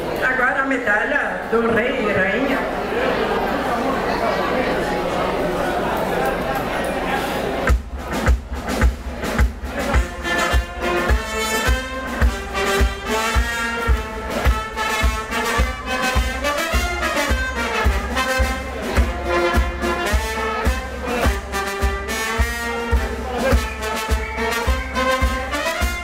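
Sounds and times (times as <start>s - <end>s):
brass band playing: 7.6s - 26.0s
drum beat: 7.6s - 26.0s.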